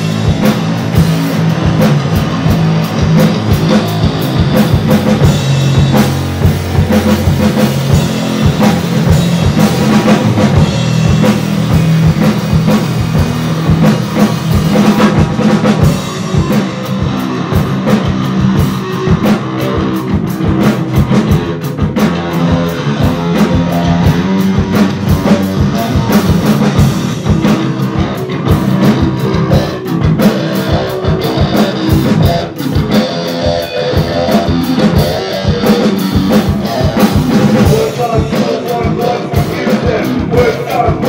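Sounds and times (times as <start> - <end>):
rock band playing: 0.0 - 41.0.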